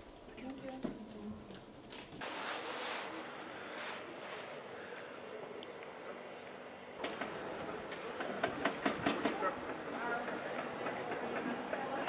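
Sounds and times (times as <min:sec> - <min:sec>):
faint voices: 0:03.0 - 0:12.0.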